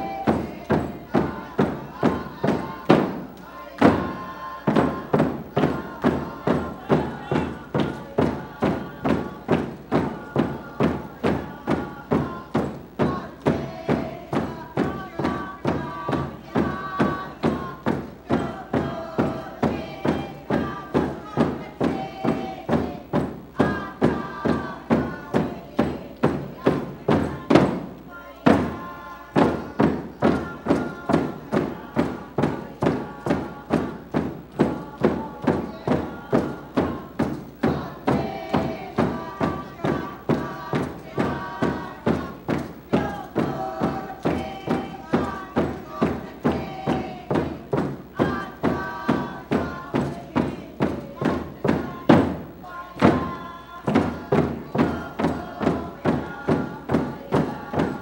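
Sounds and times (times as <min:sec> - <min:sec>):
frame drums beating: 0:00.0 - 0:58.0
group singing: 0:00.0 - 0:58.0.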